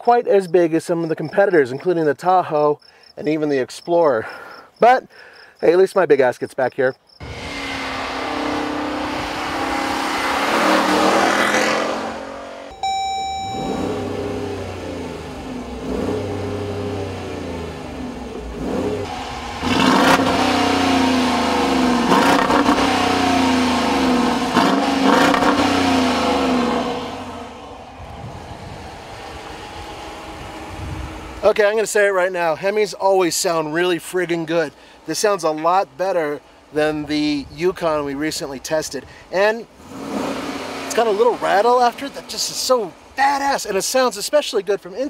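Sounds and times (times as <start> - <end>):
car engine revving: 7.2 - 31.7, 39.8 - 43.2.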